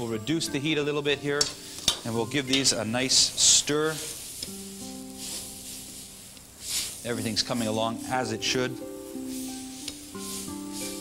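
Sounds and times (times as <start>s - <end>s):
background music of held notes: 0.0s - 11.0s
water boiling with bubbling hiss: 2.8s - 11.0s.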